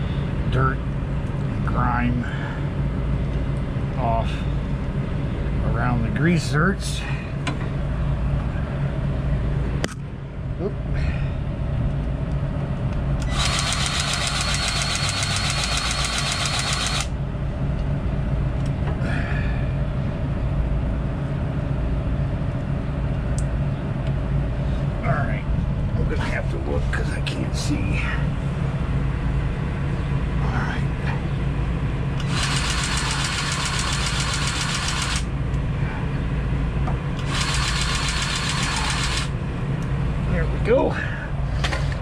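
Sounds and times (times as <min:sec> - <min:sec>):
low engine hum: 0:00.0 - 0:42.0
grease gun motor whine: 0:13.2 - 0:17.2, 0:32.2 - 0:35.3, 0:37.2 - 0:39.4.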